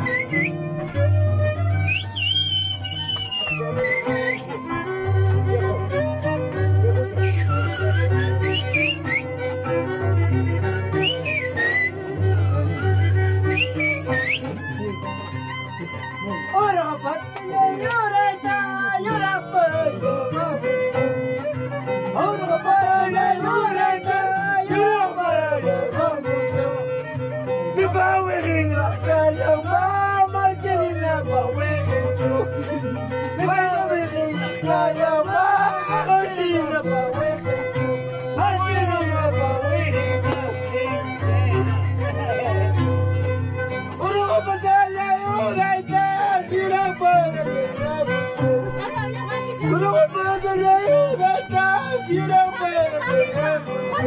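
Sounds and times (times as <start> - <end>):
violin sliding melody: 0.0 - 54.0.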